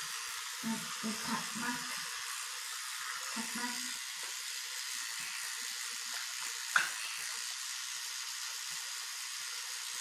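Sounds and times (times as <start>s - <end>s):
electric toothbrush running: 0.0s - 10.0s.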